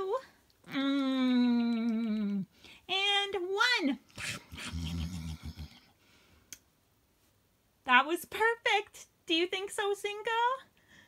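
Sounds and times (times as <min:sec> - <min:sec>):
person making munching noises: 0:00.6 - 0:02.5, 0:04.1 - 0:05.9.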